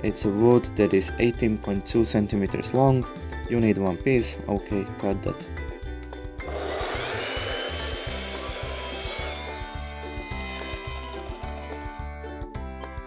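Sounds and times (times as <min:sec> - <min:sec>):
background music with steady beat: 0:00.0 - 0:13.0
mitre saw cutting wood: 0:06.4 - 0:12.2.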